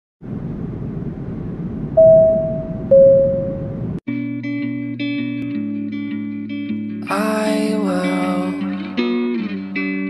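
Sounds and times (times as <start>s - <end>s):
clear electronic tones: 2.0s - 3.9s.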